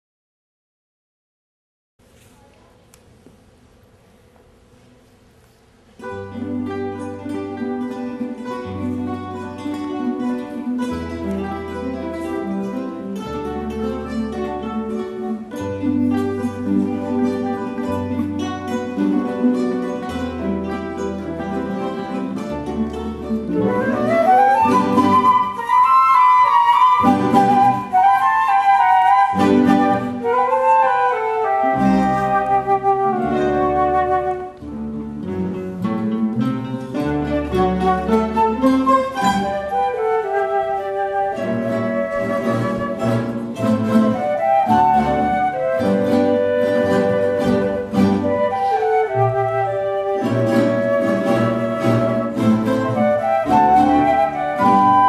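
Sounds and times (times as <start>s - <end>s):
classical guitar ensemble: 2.0s - 55.0s
flutes playing melody: 6.1s - 35.6s, 36.3s - 55.0s.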